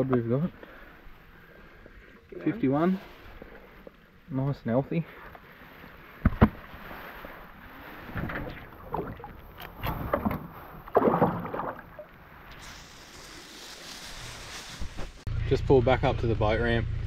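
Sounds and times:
knocks and rustles: 6.2s - 6.8s
fish splashing into water: 8.6s - 13.0s
steady hiss: 12.5s - 15.3s.

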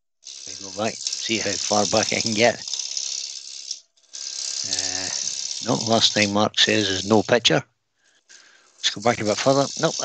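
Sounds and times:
lathe tool cutting wood: 0.4s - 7.4s, 8.8s - 10.0s.

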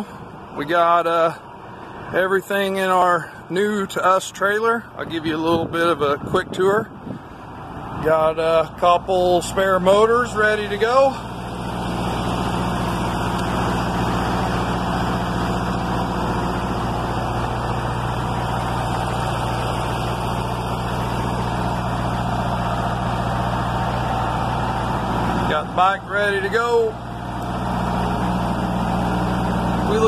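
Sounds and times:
engine idling: 0.0s - 30.0s.

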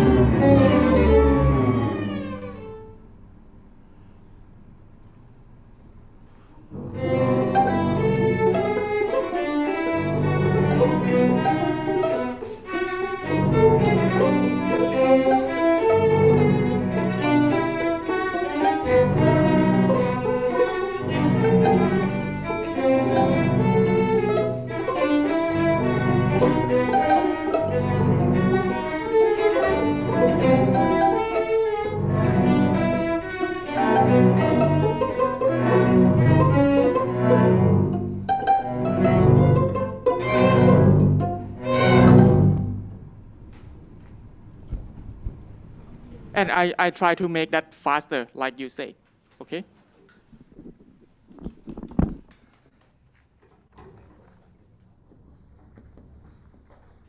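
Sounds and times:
string orchestra playing: 0.0s - 3.2s, 6.7s - 43.0s.

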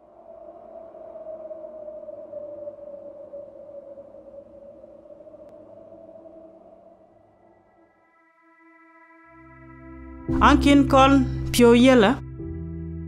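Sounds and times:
low ambient drone: 0.0s - 11.5s.

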